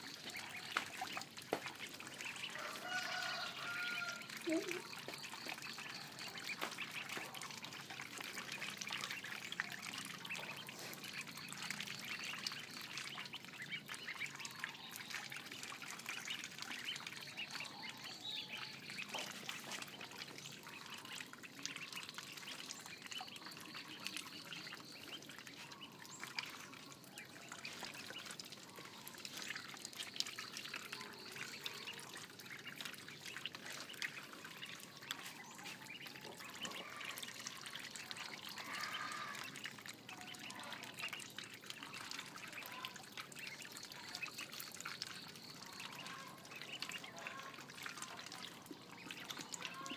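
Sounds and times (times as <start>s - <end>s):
ducklings peeping: 0.0s - 49.9s.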